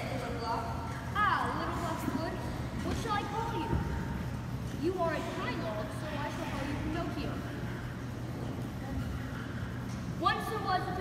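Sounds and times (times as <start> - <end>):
faint murmur of voices: 0.0 - 11.0
low hall hum: 0.0 - 11.0.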